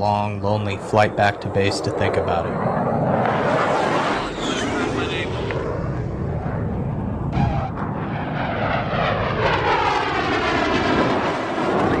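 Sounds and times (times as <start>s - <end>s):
jet engines roaring at takeoff: 0.0s - 12.0s.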